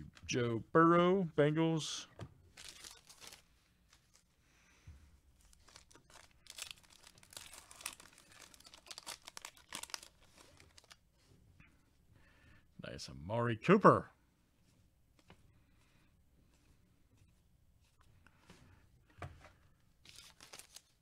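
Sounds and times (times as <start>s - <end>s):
foil wrapper tearing and crinkling: 2.6s - 3.4s, 5.5s - 11.0s, 20.0s - 21.0s.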